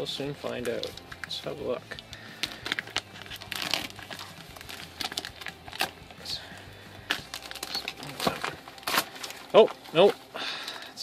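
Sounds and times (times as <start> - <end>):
plastic mailer bag tearing and crinkling: 0.4 - 10.8.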